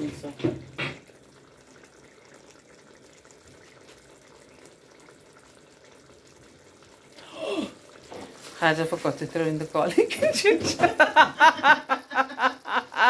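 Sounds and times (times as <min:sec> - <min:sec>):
curry bubbling in a pot: 0:00.0 - 0:13.0.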